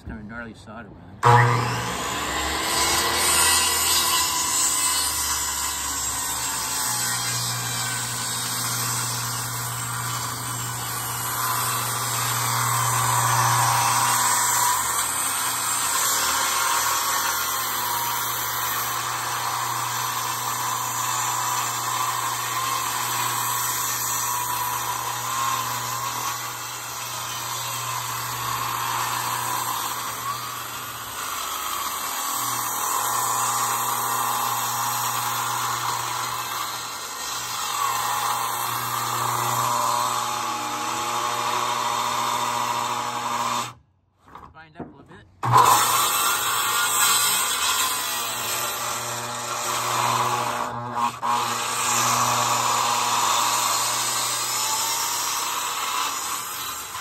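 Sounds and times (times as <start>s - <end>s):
circular saw cutting wood: 1.2s - 43.8s, 44.6s - 57.0s.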